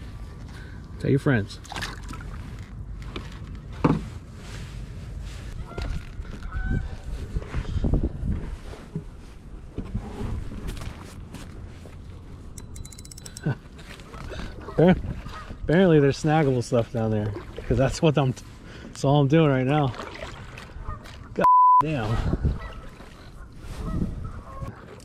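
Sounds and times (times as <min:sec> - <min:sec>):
low wind rumble: 0:00.0 - 0:12.9, 0:21.8 - 0:24.8
fishing reel clicking: 0:12.6 - 0:13.4.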